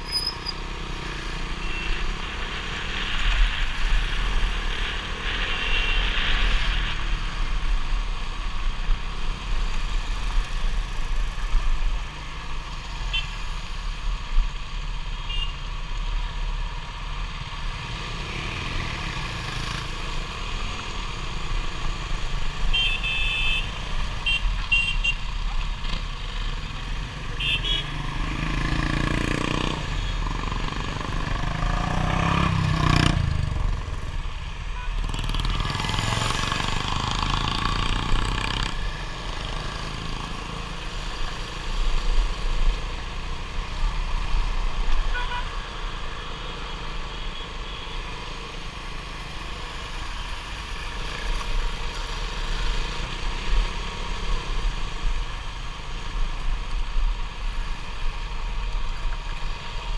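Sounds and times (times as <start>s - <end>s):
motorcycle engine accelerating: 28.1s - 34.1s, 35.0s - 40.7s.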